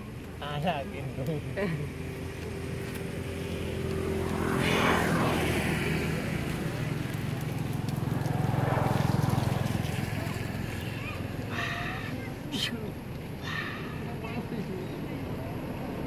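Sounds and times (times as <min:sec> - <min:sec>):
vehicle engine running: 0:00.0 - 0:16.0
vehicles passing: 0:00.0 - 0:16.0.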